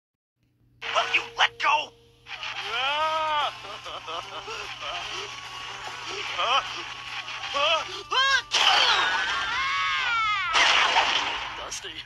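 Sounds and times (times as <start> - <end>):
noisy background: 0.8 - 12.0
cartoon character's long cry: 8.8 - 10.6.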